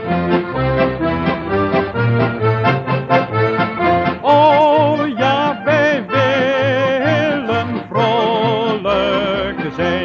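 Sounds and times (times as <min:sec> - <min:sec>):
accordion orchestra playing: 0:00.0 - 0:10.0.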